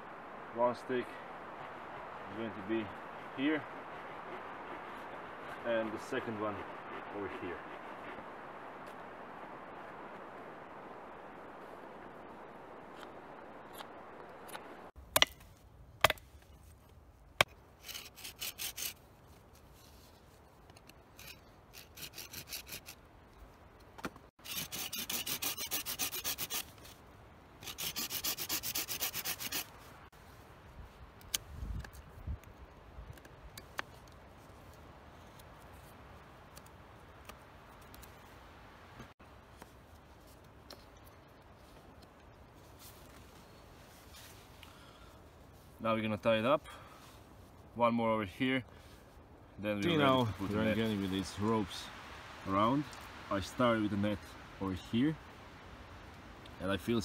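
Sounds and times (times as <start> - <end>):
steady hiss: 0.0 - 15.0, 33.6 - 57.0
knife scraping wooden stick: 17.4 - 19.0, 20.8 - 23.0, 24.4 - 27.0, 27.6 - 29.8.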